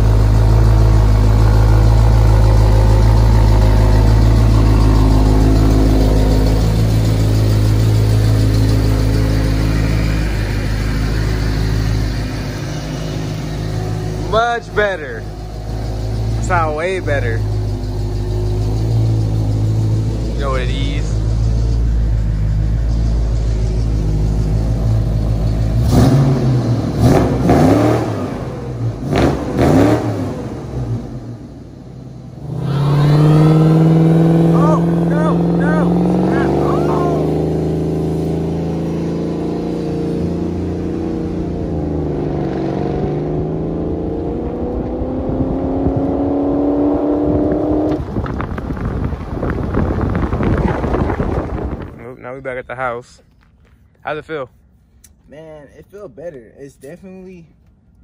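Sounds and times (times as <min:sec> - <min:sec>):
car engine revving: 0:00.0 - 0:52.1.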